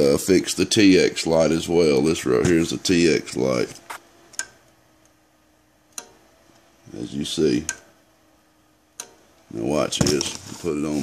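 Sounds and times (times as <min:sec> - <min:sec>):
faint steady hum: 0:00.0 - 0:11.0
sharp switch clicks: 0:04.3 - 0:04.6, 0:05.9 - 0:06.2, 0:07.7 - 0:07.9, 0:09.0 - 0:09.2.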